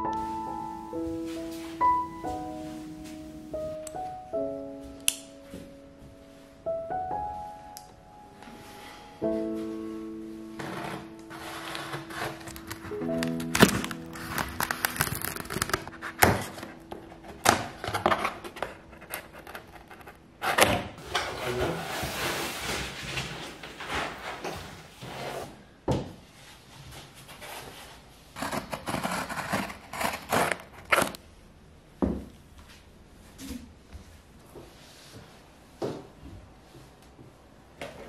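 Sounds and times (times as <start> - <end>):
rustling and sliding: 0.2 - 3.8, 8.4 - 20.2, 21.0 - 31.2
cardboard tearing: 11.0 - 20.8, 28.4 - 31.2.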